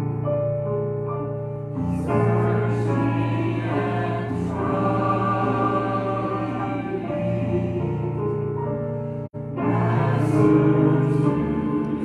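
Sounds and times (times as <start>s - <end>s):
keyboard accompaniment: 0.0s - 12.0s
congregation singing a hymn: 1.9s - 8.4s, 9.5s - 12.0s.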